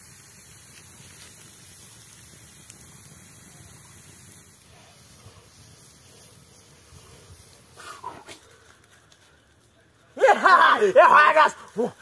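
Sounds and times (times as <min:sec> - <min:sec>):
wood fire hissing and crackling: 0:00.0 - 0:12.0.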